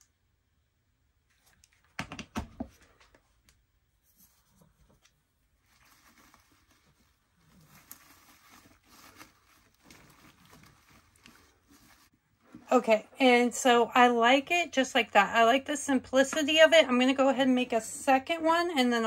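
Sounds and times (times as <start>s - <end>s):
artificial leaves rustling and crinkling: 4.0s - 12.9s.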